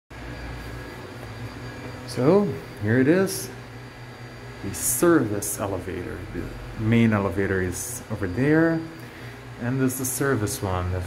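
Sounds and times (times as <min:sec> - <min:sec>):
faint high-pitched whine: 0:04.2 - 0:11.0.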